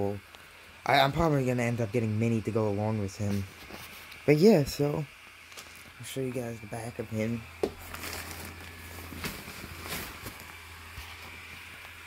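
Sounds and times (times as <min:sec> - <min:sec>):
blower fan humming: 0:00.0 - 0:12.0
fabric rustling and knocking: 0:07.6 - 0:10.6.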